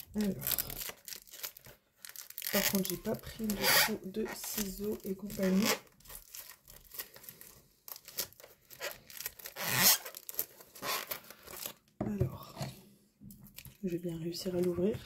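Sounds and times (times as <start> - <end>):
packaging ripping and crinkling: 0.0 - 12.0.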